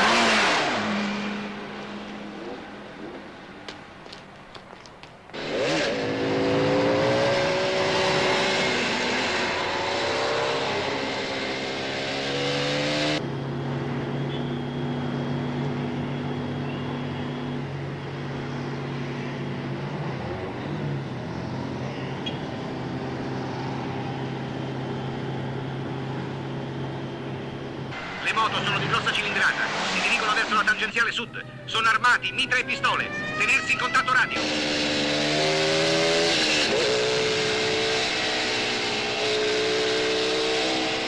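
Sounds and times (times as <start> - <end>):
motorcycle engines revving: 0.0 - 4.2, 5.3 - 41.0.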